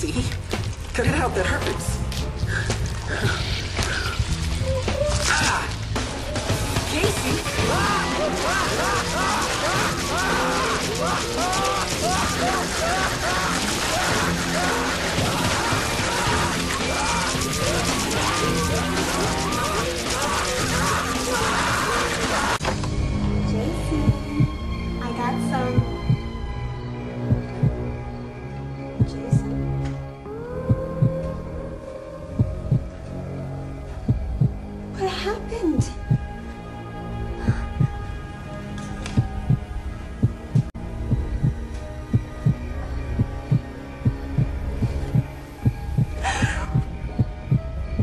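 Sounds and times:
droning suspense score: 0:00.0 - 0:48.0
heartbeat thumps: 0:24.0 - 0:24.8, 0:25.7 - 0:26.5, 0:27.2 - 0:27.9, 0:29.0 - 0:29.5, 0:30.6 - 0:31.3, 0:32.3 - 0:33.0, 0:34.0 - 0:34.7, 0:35.8 - 0:36.4, 0:37.4 - 0:38.1, 0:39.2 - 0:48.0.

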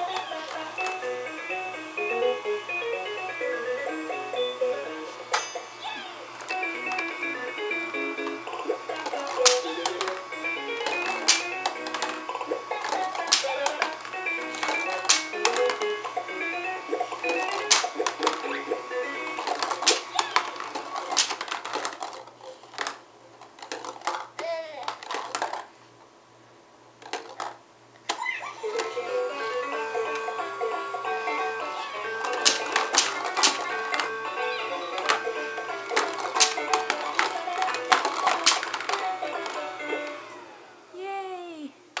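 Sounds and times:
electronic toy tune: 0:00.0 - 0:05.1, 0:05.8 - 0:12.8, 0:13.5 - 0:20.3, 0:28.7 - 0:37.7
plastic balls clacking in bowl: 0:08.2 - 0:15.9, 0:16.9 - 0:25.8, 0:27.0 - 0:27.6, 0:32.2 - 0:34.1, 0:34.8 - 0:39.7.

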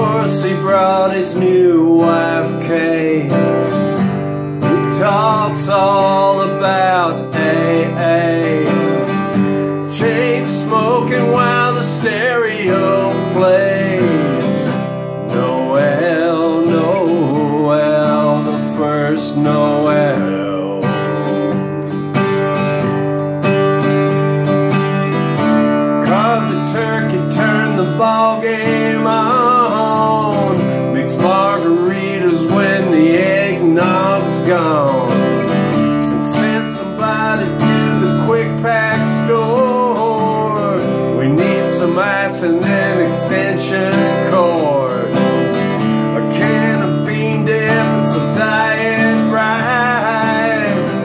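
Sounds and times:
man singing: 0:00.0 - 0:22.8, 0:25.4 - 0:51.0
acoustic guitar strumming: 0:00.0 - 0:51.0.

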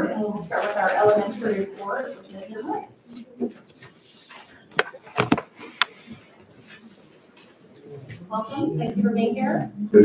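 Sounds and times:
faint murmured voices: 0:00.0 - 0:10.0.

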